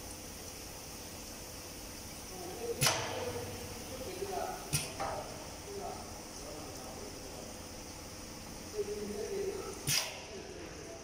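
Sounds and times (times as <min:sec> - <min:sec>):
liquid filling machine hissing: 0:00.0 - 0:11.0.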